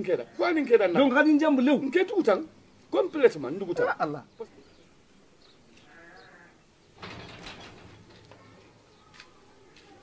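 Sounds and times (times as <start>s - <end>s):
farm animal bleating: 5.8s - 6.6s.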